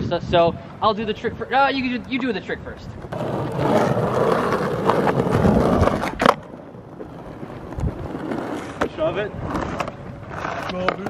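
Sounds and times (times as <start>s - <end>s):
skateboard wheels rolling on asphalt: 0.0s - 11.0s
skateboard clacking on pavement: 1.9s - 11.0s.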